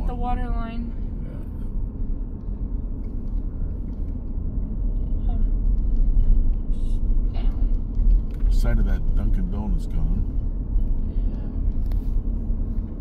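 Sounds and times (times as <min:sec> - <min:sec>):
car interior road rumble: 0:00.0 - 0:13.0.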